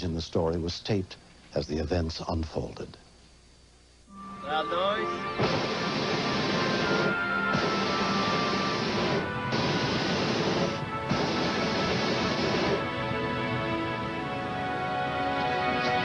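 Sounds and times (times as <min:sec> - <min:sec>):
background music: 0:04.1 - 0:16.0
propane burner blasts: 0:05.2 - 0:16.0.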